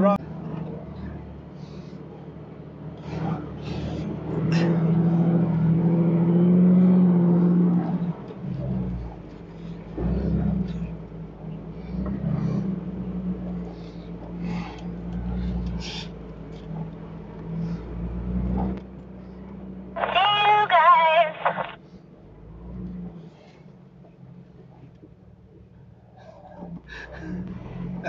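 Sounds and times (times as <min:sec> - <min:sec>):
car engine drone: 0:00.0 - 0:28.0
voice over two-way radio: 0:20.0 - 0:21.8.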